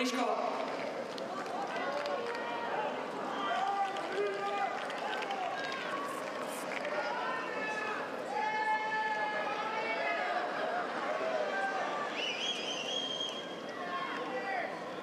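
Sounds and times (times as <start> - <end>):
spectators shouting and cheering: 0.0 - 15.0
long held shout: 7.0 - 10.5.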